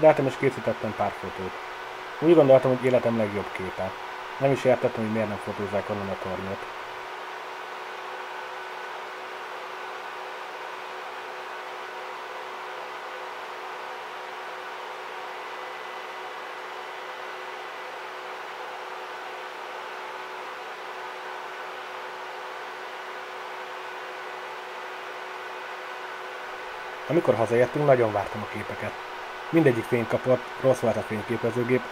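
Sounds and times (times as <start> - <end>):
steady whirring hum: 0.0 - 31.9.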